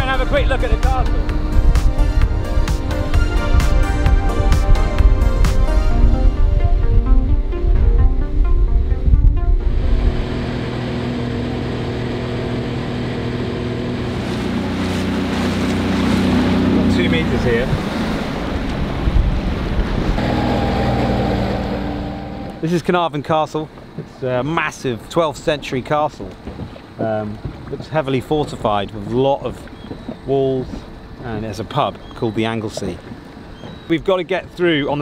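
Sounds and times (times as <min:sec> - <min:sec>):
rushing water: 0:00.0 - 0:07.0, 0:09.6 - 0:35.0
background music: 0:00.0 - 0:10.6, 0:20.2 - 0:22.8
speedboat engine running: 0:00.0 - 0:24.2, 0:26.3 - 0:35.0
wind: 0:00.0 - 0:35.0.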